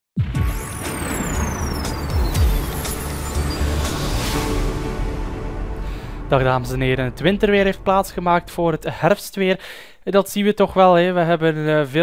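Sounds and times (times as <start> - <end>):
high tone gliding downward: 0.4 - 9.5
deep rumbles dropping in pitch: 0.4 - 9.6.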